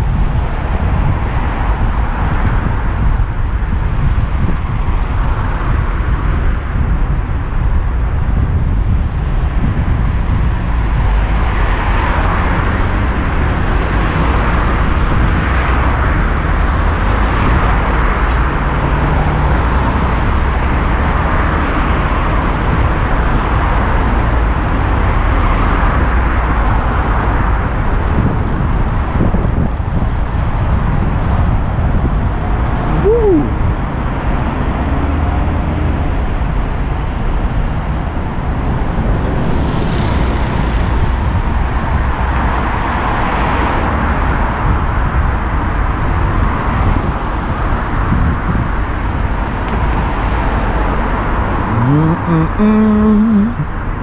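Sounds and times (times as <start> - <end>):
car engines and tyres rumbling: 0.0 - 54.0.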